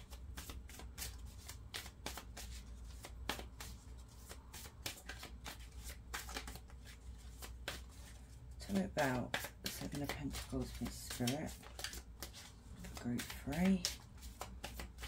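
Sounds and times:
cards being shuffled: 0.0 - 15.0.

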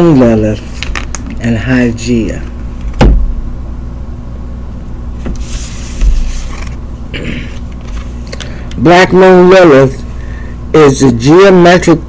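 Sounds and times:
low hum: 0.0 - 11.0
cards rustling: 5.4 - 6.8.

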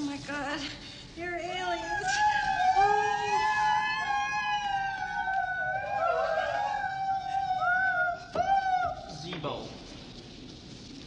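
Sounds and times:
piercing high-pitched wail: 1.7 - 9.2.

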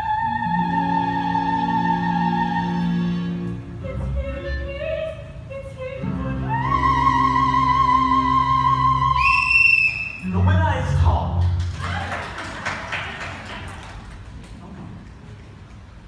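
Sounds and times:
person singing with vibrato: 0.0 - 9.4
audience applauding and cheering: 11.3 - 16.0.

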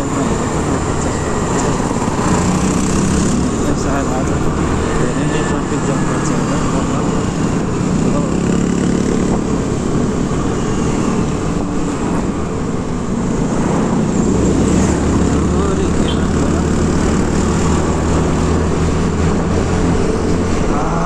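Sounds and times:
wind and road noise: 0.0 - 21.0
scooter engine running: 0.1 - 11.0.

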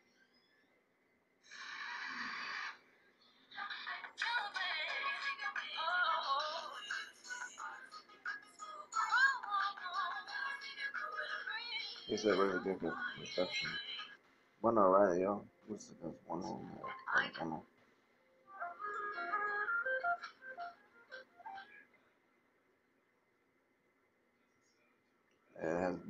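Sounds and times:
song with singing on phone speaker: 3.3 - 14.3, 18.5 - 21.9.

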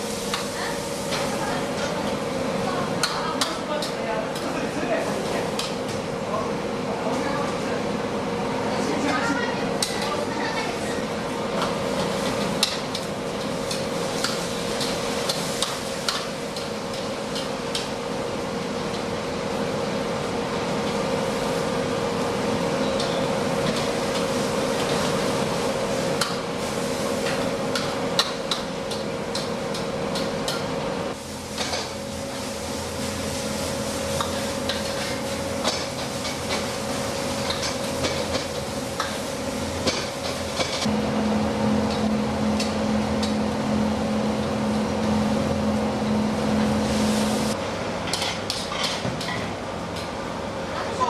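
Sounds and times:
steady hum: 0.0 - 48.2
metal utensils clanking on woks: 37.4 - 39.2.

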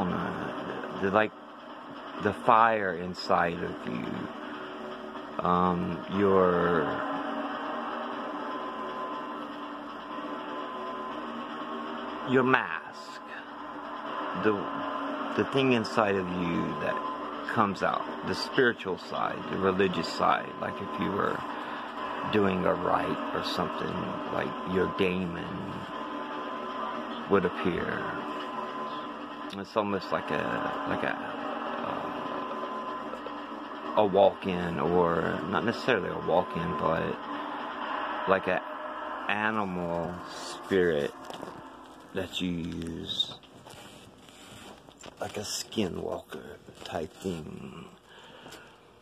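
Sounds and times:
drone of held tones: 0.0 - 49.0
steady mechanical hum: 0.0 - 49.0
higher tone: 2.2 - 44.0.

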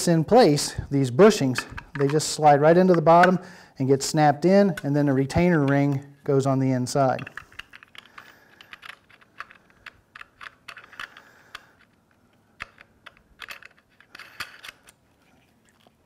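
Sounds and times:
clicks of metal and plastic parts: 1.5 - 3.4, 7.0 - 15.0.

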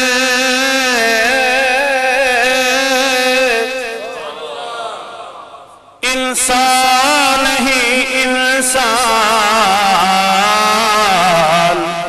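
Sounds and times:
man singing unaccompanied: 0.0 - 5.1, 6.0 - 12.0.

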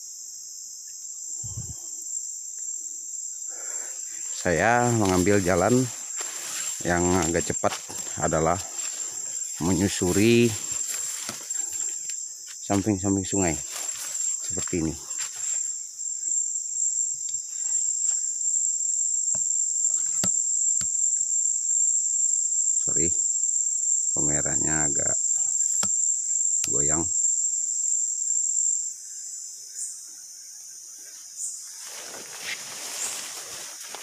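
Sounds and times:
rainforest insect chorus: 0.0 - 34.0
footsteps in undergrowth: 4.2 - 15.8, 31.7 - 34.0.

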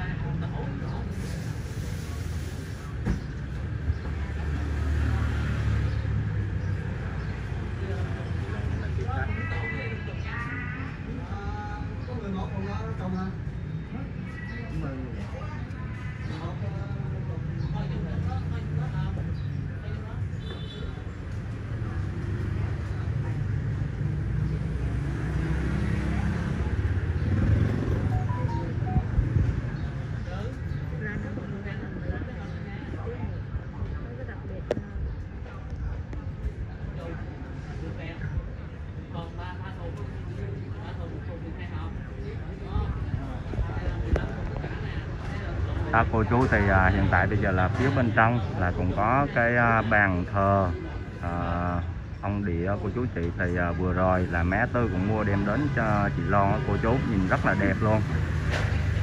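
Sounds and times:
road traffic rumble: 0.0 - 59.0
passing vehicle rumble: 3.6 - 10.2, 21.0 - 34.8
motor vehicle passing: 21.6 - 30.6.

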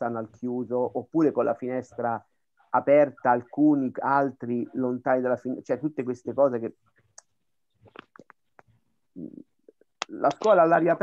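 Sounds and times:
mouth clicks: 7.1 - 10.6.

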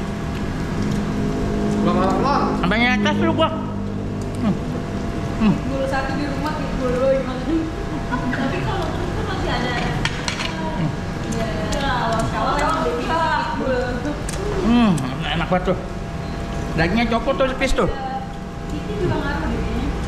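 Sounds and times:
indistinct voices: 1.7 - 20.0.

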